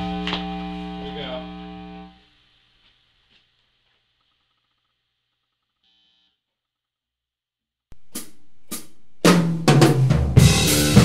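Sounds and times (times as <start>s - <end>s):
sustained amplified instrument note: 0.0s - 2.2s.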